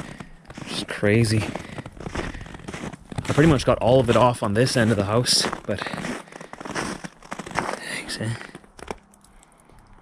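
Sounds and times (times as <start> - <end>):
footsteps crunching on snow and ice: 0.0 - 9.8.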